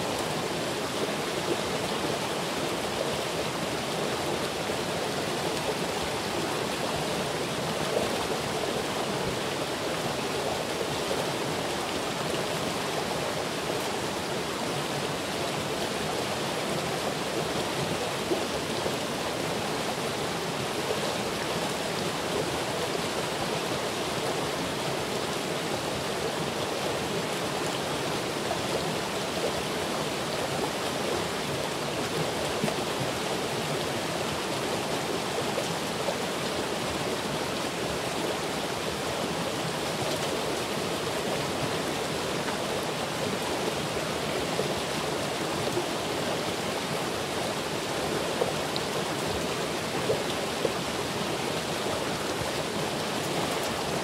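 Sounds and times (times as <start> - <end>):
running water rushing: 0.0 - 54.0.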